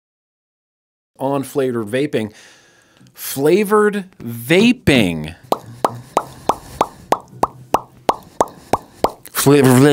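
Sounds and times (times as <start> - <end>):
repeating upward bloops: 5.5 - 9.0.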